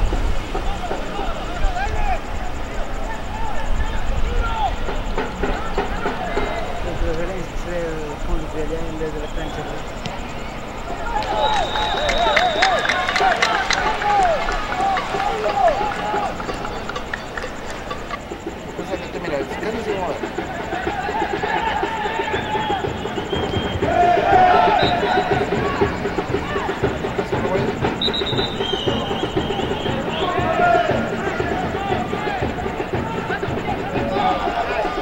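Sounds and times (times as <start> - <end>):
empty stadium ambience: 0.0 - 35.0
players shouting: 0.0 - 35.0
music with fast beat: 3.6 - 35.0.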